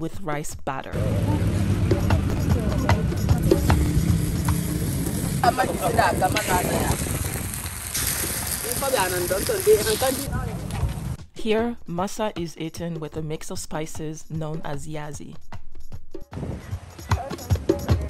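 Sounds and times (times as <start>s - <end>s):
voices talking: 0.9s - 4.1s, 4.7s - 7.3s, 8.4s - 11.2s
batter sizzling in a hot pan: 4.1s - 10.3s.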